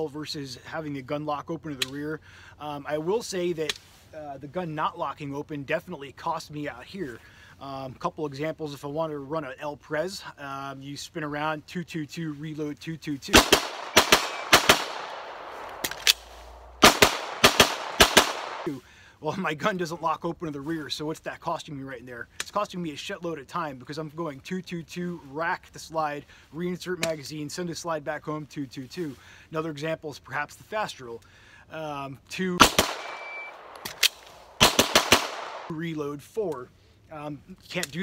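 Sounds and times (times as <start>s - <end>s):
pistol shots: 13.3s - 18.7s, 32.6s - 35.7s
gunshot echo: 13.4s - 18.7s, 32.6s - 35.7s
sharp reload clicks: 13.4s - 18.7s.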